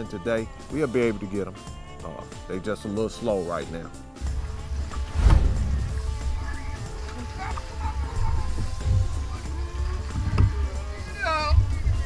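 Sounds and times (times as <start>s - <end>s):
background music: 0.0s - 12.0s
loud thump: 4.3s - 6.5s.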